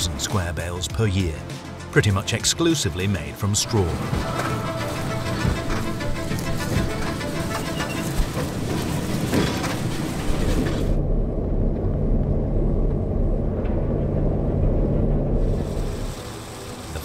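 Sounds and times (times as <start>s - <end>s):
farm machinery engine rumble: 0.0s - 17.0s.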